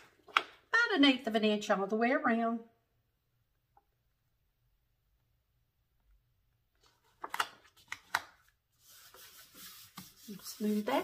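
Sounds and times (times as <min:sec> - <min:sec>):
palms rubbing paper: 0:08.7 - 0:11.0
sharp paper sounds: 0:08.8 - 0:11.0.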